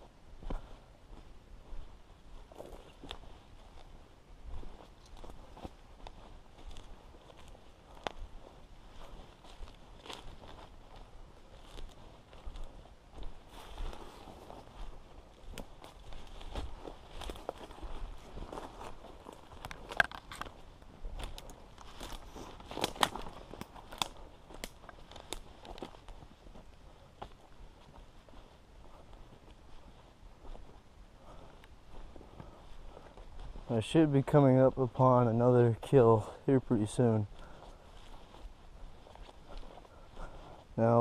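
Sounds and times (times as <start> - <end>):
footsteps crunching on dry leaves: 0.4 - 35.5, 36.1 - 41.0
twigs snapping: 19.5 - 20.6, 21.2 - 26.1.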